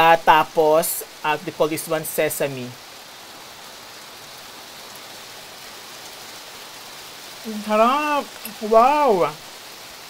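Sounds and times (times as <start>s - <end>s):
rain on a glass roof: 0.0s - 10.0s.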